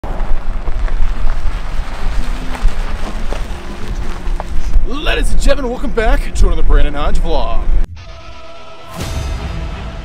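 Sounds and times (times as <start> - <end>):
car engine: 0.0 - 4.9
wind rumble on microphone: 0.0 - 4.9
tyres crunching on dirt: 0.0 - 7.5.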